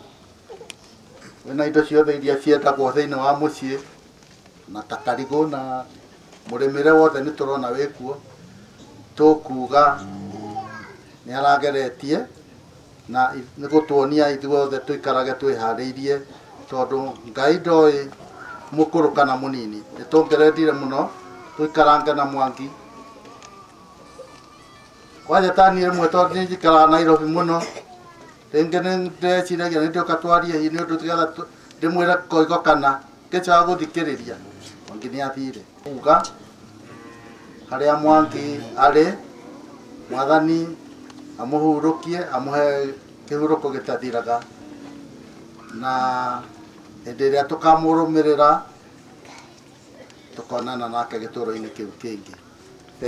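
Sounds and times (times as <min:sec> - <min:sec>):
man talking into a microphone: 0:01.4 - 0:03.9, 0:06.5 - 0:08.2, 0:09.2 - 0:12.3, 0:13.1 - 0:22.8, 0:25.2 - 0:27.8, 0:28.5 - 0:36.4, 0:37.7 - 0:39.2, 0:40.1 - 0:40.8, 0:41.4 - 0:44.4, 0:47.1 - 0:48.7.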